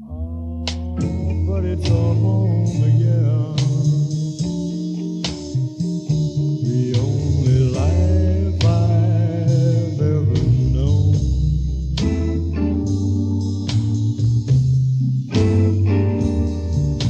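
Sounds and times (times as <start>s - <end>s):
bass guitar: 0.0s - 17.0s
electric guitar: 0.0s - 17.0s
drums with sharp accents: 0.7s - 17.0s.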